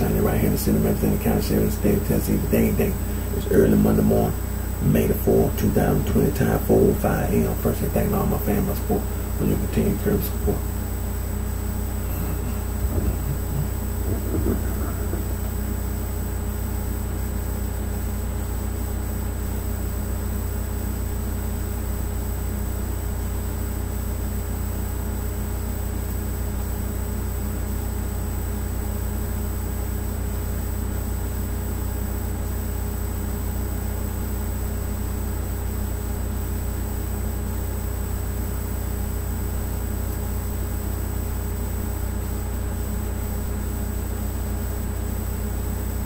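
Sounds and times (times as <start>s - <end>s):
thin high-pitched whine: 0.0s - 20.0s
steady low hum: 0.0s - 46.0s.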